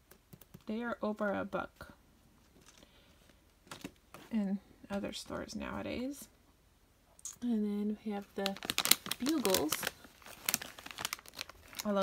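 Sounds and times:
plastic snack bag crinkling: 8.2s - 12.0s.

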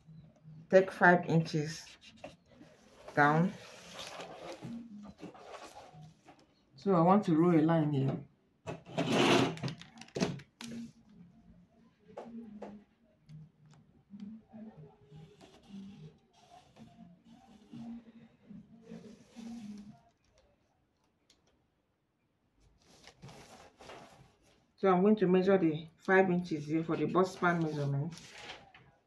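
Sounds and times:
marker scratching on paper: 1.5s - 5.9s, 15.0s - 18.1s.

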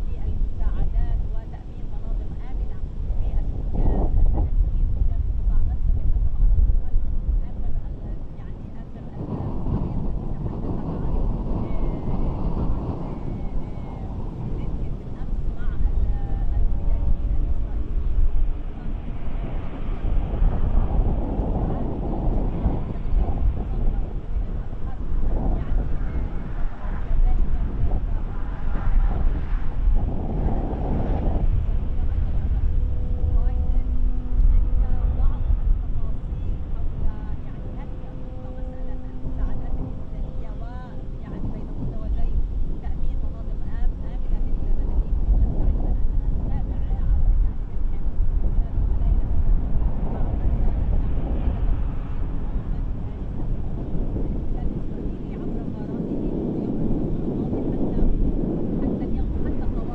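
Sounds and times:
low rumble: 0.0s - 59.9s
steady hum: 0.0s - 59.9s
wind on microphone: 0.0s - 59.9s.

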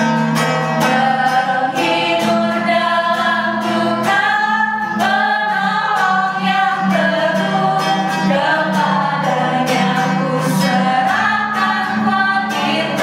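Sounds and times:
acoustic guitar strumming: 0.0s - 13.0s
women singing worship song: 0.8s - 13.0s.

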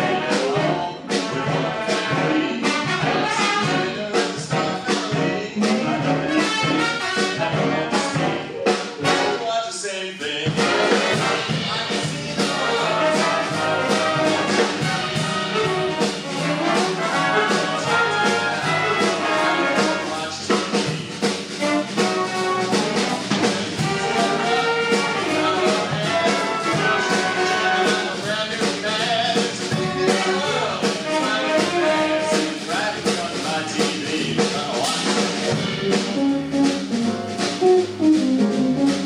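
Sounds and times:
jazz big band playing: 0.0s - 39.0s.

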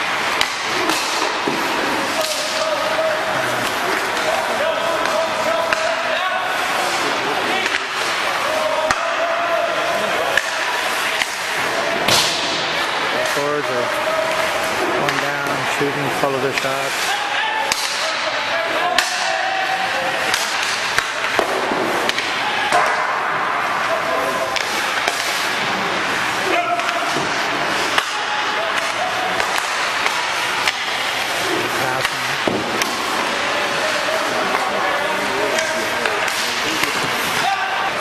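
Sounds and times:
hockey sticks cracking on pucks: 0.0s - 38.0s
pucks striking boards: 0.0s - 38.0s
skates scraping on ice: 0.0s - 38.0s.

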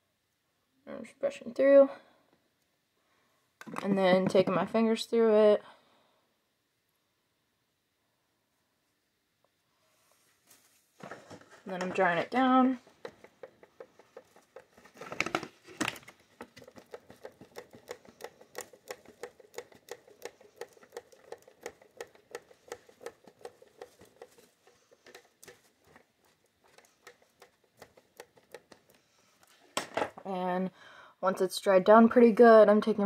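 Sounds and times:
hand fan flapping: 10.5s - 29.0s.

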